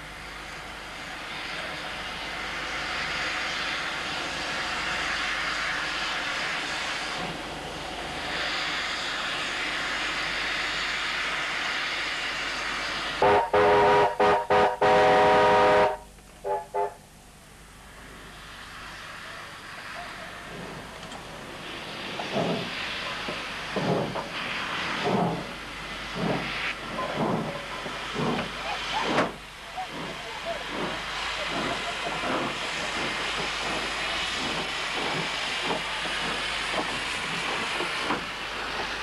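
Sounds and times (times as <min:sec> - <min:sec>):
steam locomotive hissing: 0:00.0 - 0:39.0
steam whistle toots: 0:13.2 - 0:17.0.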